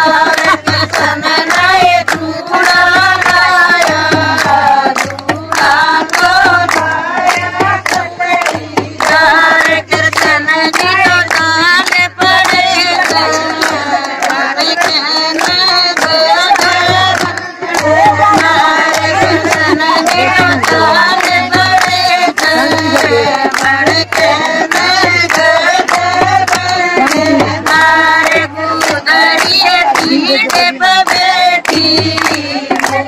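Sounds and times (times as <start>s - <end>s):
hand claps keeping time: 0.0s - 33.0s
women singing together: 0.0s - 33.0s.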